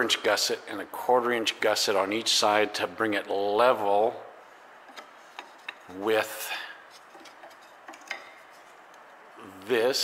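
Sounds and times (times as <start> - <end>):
man speaking: 0.0 - 4.3, 5.9 - 6.8, 9.4 - 10.0.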